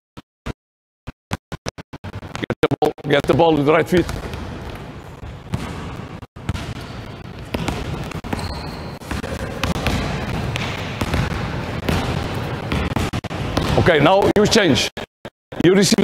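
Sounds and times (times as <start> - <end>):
basketballs bouncing on gym floor: 3.1 - 14.3.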